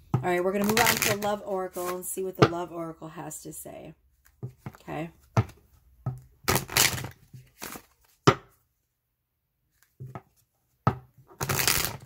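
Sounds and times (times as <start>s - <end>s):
cards being shuffled: 0.6s - 2.0s, 6.5s - 8.2s, 11.4s - 12.0s.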